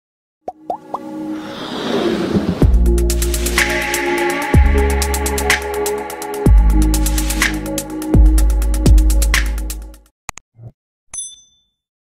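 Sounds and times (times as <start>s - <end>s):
electronic music: 2.7s - 10.0s.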